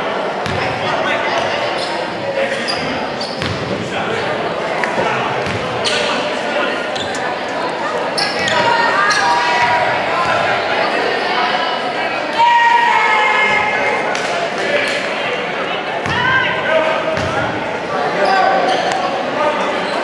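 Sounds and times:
sneakers squeaking: 1.4s - 10.5s, 18.1s - 20.0s
people calling out: 12.2s - 14.1s.

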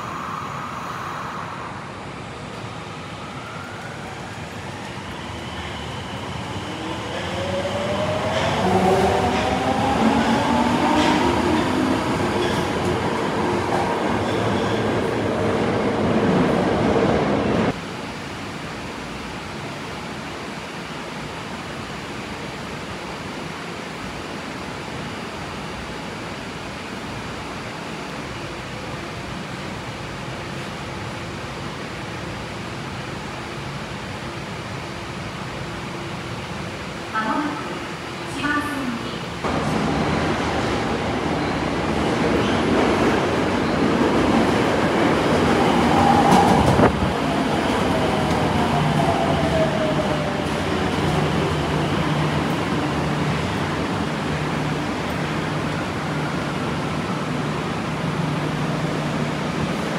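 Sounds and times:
subway train motor whine: 0.0s - 21.0s, 39.2s - 59.9s
train wheels rumbling: 39.4s - 59.9s.

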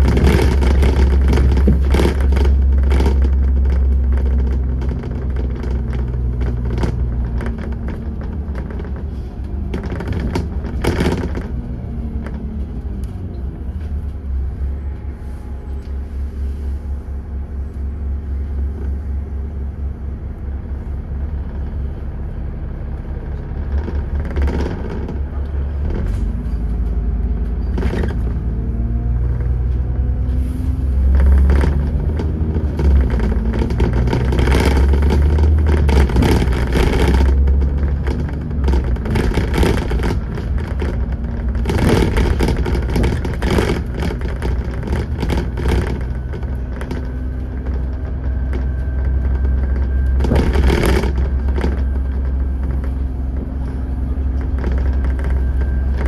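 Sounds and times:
bodywork rattling: 0.0s - 14.6s, 23.2s - 56.0s
bus engine and road rumble: 0.0s - 56.0s.

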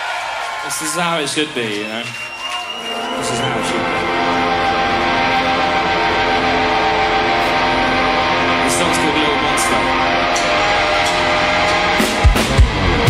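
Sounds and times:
electric bass droning chord: 3.0s - 13.0s.

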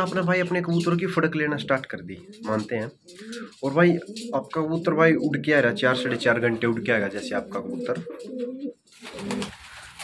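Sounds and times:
pigeons cooing: 0.0s - 9.5s.

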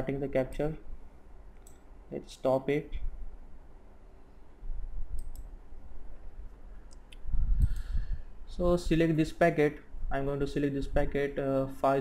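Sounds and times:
computer mouse clicks: 1.5s - 1.9s, 5.1s - 5.6s.

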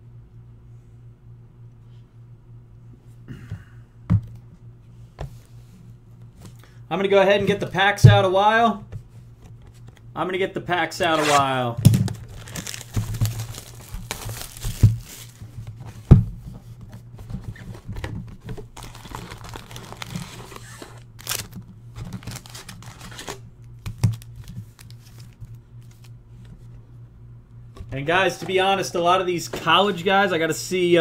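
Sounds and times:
steady low hum: 0.0s - 31.0s
plastic shrink wrap tearing: 11.0s - 15.4s, 18.7s - 26.1s.

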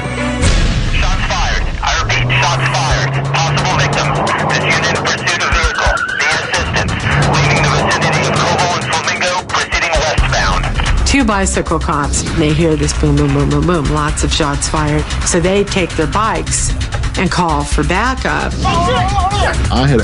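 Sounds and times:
dramatic music: 0.0s - 20.0s
crackly police radio voice: 1.0s - 10.9s.

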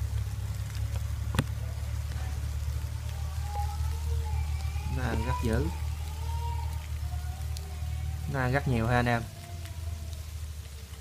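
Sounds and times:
crickets crawling on leaves: 0.0s - 11.0s.

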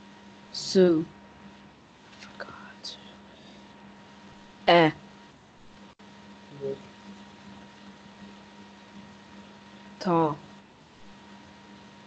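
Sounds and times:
faint steady hum: 0.0s - 12.0s
person whispering: 2.2s - 3.3s, 6.5s - 6.8s.

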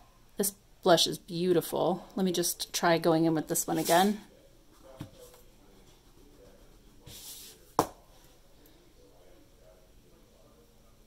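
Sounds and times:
fingertip rubbing powder: 5.8s - 7.7s.

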